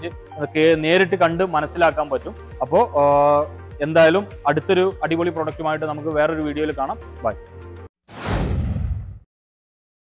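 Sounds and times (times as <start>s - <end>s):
whoosh: 8.1s - 9.3s.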